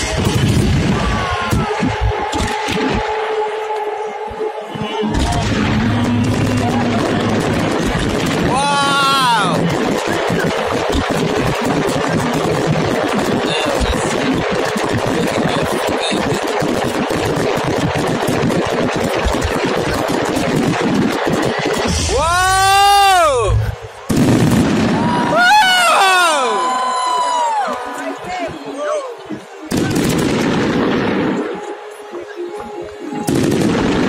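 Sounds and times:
fireworks crackling: 0.0 - 3.3, 5.1 - 34.0.

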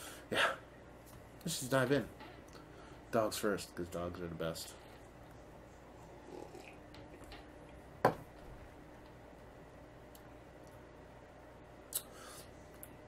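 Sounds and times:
person sipping and swallowing: 6.2 - 7.3.

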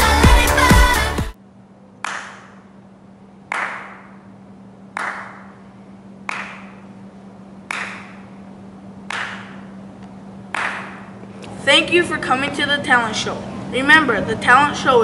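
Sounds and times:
steady low hum: 0.0 - 15.0
hand claps echoing in hall: 2.0 - 2.7, 3.5 - 4.2, 4.9 - 6.9, 7.7 - 8.4, 9.0 - 9.8, 10.5 - 11.2.

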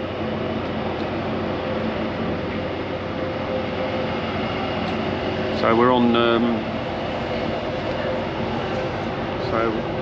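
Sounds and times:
ship engines droning: 0.0 - 10.0.

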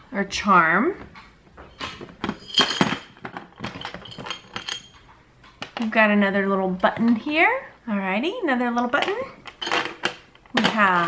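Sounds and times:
metal trinkets clinking: 1.7 - 5.1, 9.4 - 11.0.

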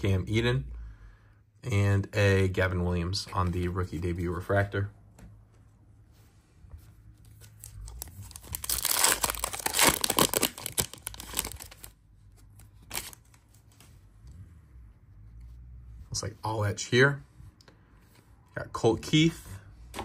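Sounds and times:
sharp crackle of wrapper: 7.6 - 12.0, 12.8 - 13.4
foil wrapper tearing and crinkling: 7.9 - 11.9, 12.8 - 13.3.

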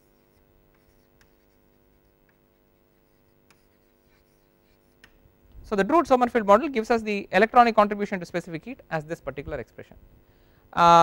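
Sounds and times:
chalk scratching on chalkboard: 0.0 - 5.2
steady low hum: 0.0 - 11.0.

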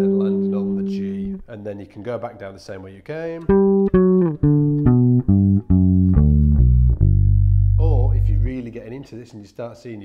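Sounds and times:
electric bass arpeggio: 3.5 - 8.6.

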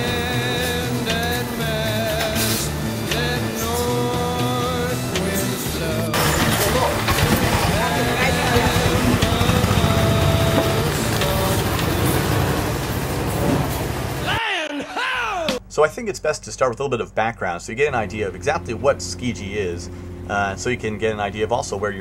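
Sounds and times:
overlapping voices: 0.0 - 12.2
music: 0.0 - 12.8
low vehicle engine rumble: 0.0 - 14.4.

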